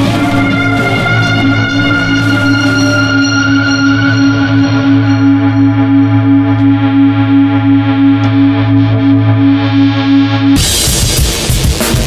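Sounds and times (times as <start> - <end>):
synthesizer drone: 0.0 - 11.9.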